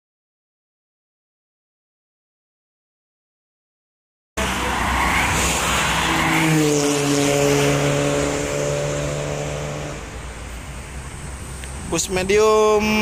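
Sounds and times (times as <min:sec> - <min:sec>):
tyre and wind roar: 0:04.4 - 0:13.0.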